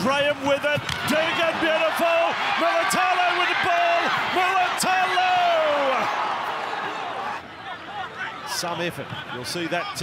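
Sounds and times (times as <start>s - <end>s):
stadium crowd noise: 0.0s - 10.0s.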